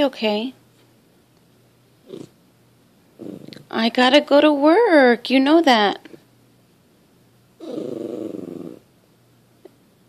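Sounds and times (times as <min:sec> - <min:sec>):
dog grumbling moan: 0:02.0 - 0:02.3, 0:03.2 - 0:03.7, 0:07.6 - 0:08.9.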